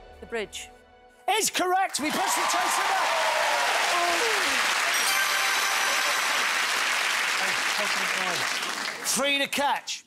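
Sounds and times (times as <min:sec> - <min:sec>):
audience applauding: 0:02.0 - 0:09.4.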